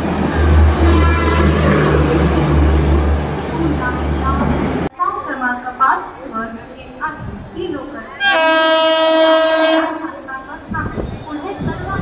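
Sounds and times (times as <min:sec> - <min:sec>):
train passing at speed: 0:00.0 - 0:05.4
train horn blast: 0:00.5 - 0:02.2, 0:08.2 - 0:10.2.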